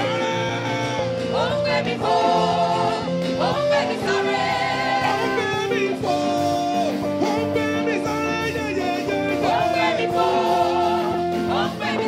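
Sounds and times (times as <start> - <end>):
church band playing gospel music: 0.0 - 12.0.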